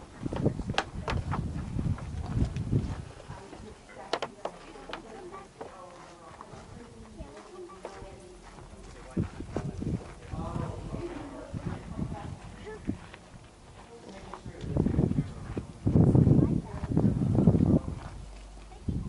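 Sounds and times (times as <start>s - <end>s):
faint voices talking: 0.0s - 19.0s.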